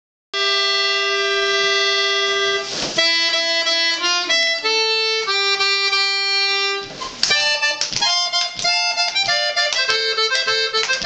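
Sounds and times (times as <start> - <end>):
button accordion chord: 0.4 - 11.0.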